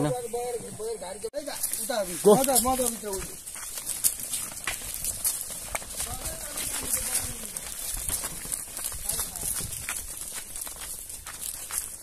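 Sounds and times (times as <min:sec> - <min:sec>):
cattle hooves clip-clopping: 0:00.1 - 0:12.0.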